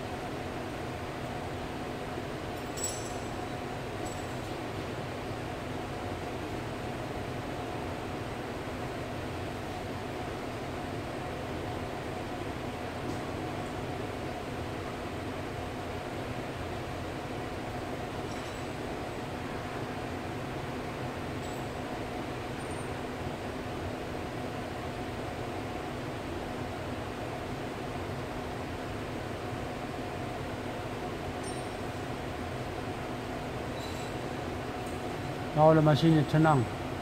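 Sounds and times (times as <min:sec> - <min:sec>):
workshop machinery humming: 0:00.0 - 0:37.0.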